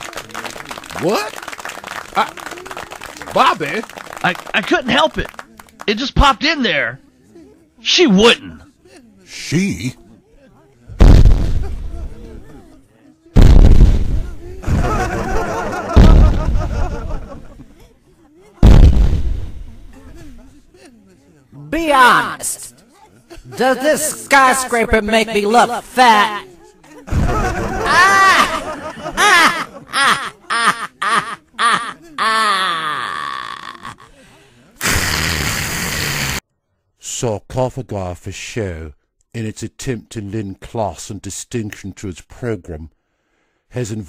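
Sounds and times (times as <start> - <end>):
deep booming impact: 11.0 - 12.1, 13.4 - 14.9, 16.0 - 16.8, 18.6 - 19.7.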